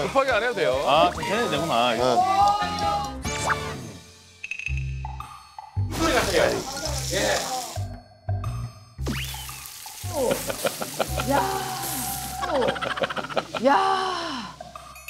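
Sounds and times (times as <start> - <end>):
background music: 0.0 - 15.0
meat sizzling on a griddle: 6.4 - 7.8, 9.2 - 13.6
people laughing: 10.1 - 14.1.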